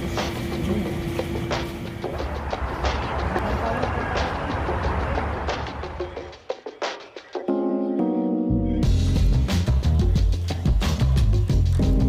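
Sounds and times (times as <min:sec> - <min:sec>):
voices chattering: 0:00.0 - 0:07.5
background music: 0:00.0 - 0:12.0.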